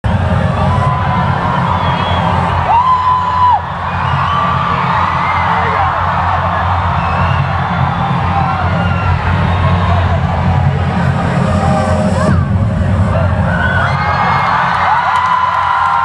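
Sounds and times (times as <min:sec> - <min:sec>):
electronic intro music: 0:00.0 - 0:16.0
crowd cheering and screaming: 0:00.1 - 0:16.0.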